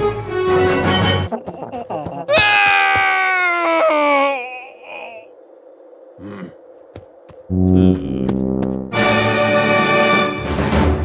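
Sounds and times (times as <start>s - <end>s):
person wailing: 1.3s - 5.3s.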